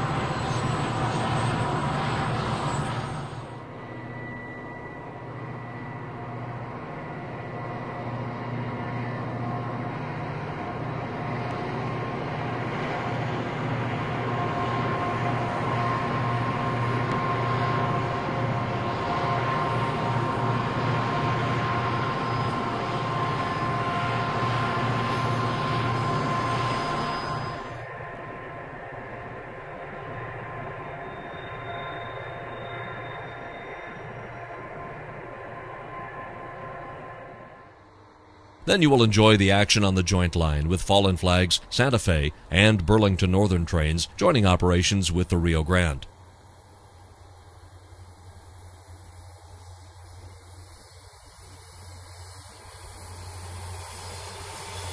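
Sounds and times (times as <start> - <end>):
diesel locomotive hum: 0.0 - 54.9.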